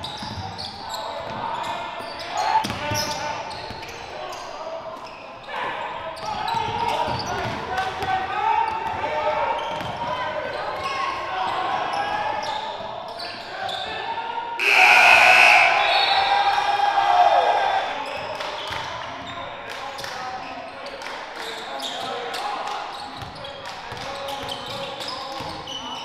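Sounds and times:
people shouting: 14.6 - 17.9
echoing voices: 14.6 - 18.0.

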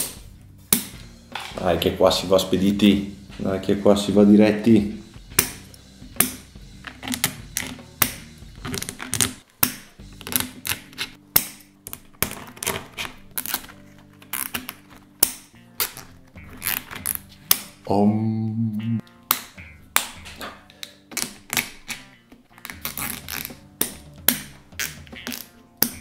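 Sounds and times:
soft background music: 0.0 - 26.0
cable ties clicking: 5.3 - 17.8, 19.0 - 26.0.

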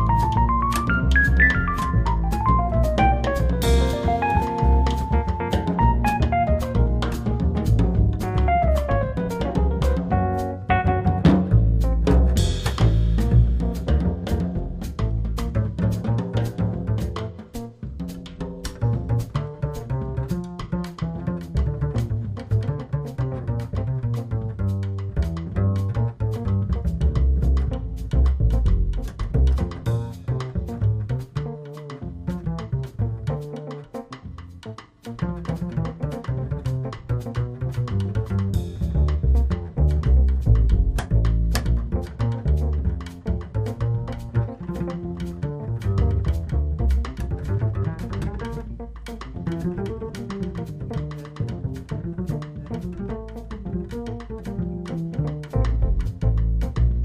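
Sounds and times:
drum kit keeping time: 0.0 - 22.1
piano: 0.0 - 57.0
plucked double bass: 0.0 - 57.0.

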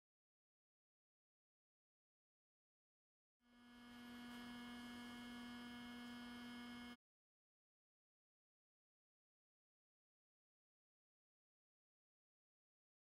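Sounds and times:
electrical hum with high whine: 3.5 - 7.0.

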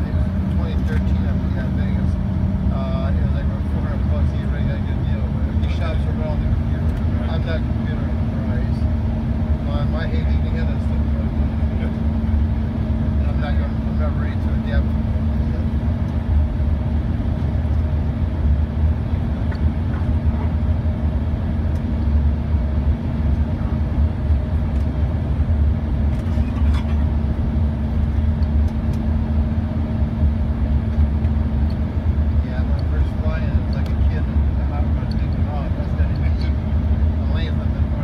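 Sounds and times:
airplane cabin rumble: 0.0 - 38.0
constant hum: 0.0 - 38.0.

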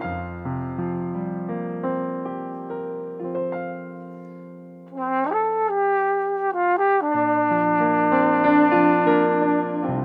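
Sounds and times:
piano notes: 0.0 - 10.0
flugelhorn melody: 4.9 - 10.0.

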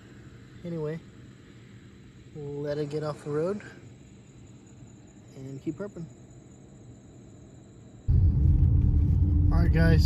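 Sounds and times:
insect chorus: 0.0 - 10.0
low hum: 8.0 - 10.0.

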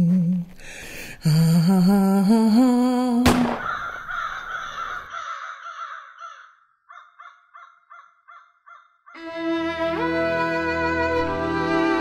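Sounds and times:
person humming: 0.0 - 3.4
crows cawing: 3.5 - 9.2.

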